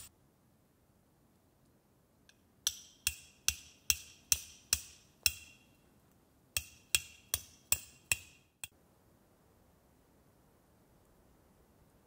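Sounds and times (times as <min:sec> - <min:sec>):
hammer blows on metal tent peg: 0:02.6 - 0:05.8, 0:06.6 - 0:08.7.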